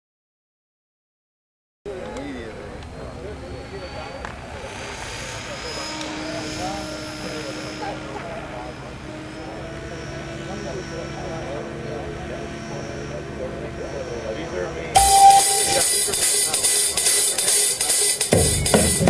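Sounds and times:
people talking: 1.9 - 19.0
model helicopter whine: 2.2 - 15.0.

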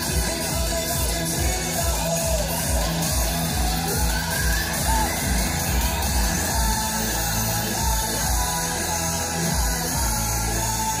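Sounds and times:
loud ride music with bass beat: 0.0 - 11.0.

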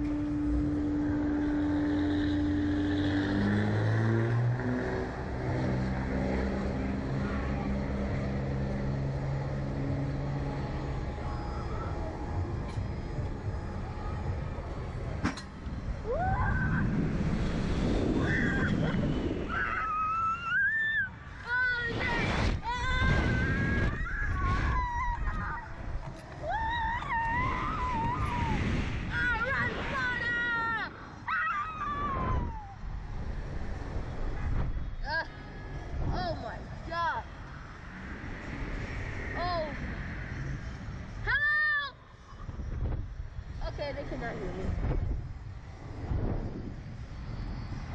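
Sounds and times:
wind rushing over microphone: 0.0 - 47.9
riders shrieking and yelping: 18.2 - 21.2, 23.2 - 28.5.

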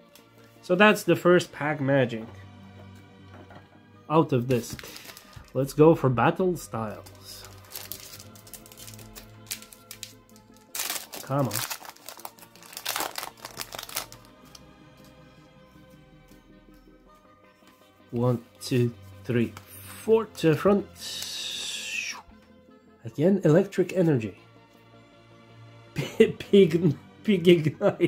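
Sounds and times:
background music: 0.0 - 28.0
trading cards rustling: 4.4 - 5.6, 6.8 - 14.7
foil wrapper crinkling: 4.6 - 5.6, 7.0 - 14.3
foil wrapper tearing open: 4.7 - 5.5, 7.3 - 14.3.

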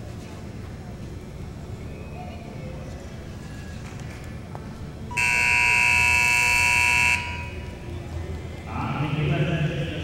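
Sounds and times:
arena buzzer: 5.1 - 7.6.

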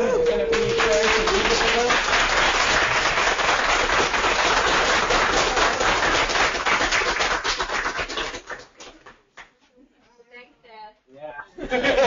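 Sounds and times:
audience applauding: 0.0 - 9.2.

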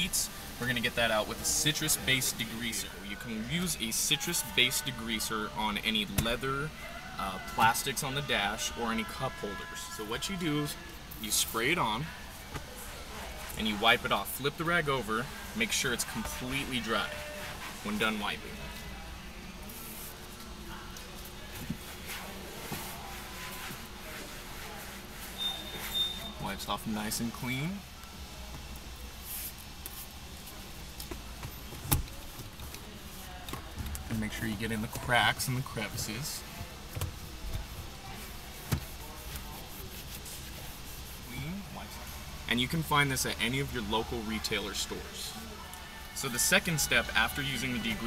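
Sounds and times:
rag rubbing on plastic: 21.7 - 26.2, 37.0 - 41.6.

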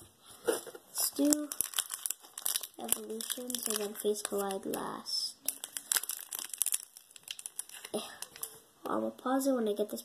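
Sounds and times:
foil wrapper crinkling and tearing: 1.0 - 8.5.

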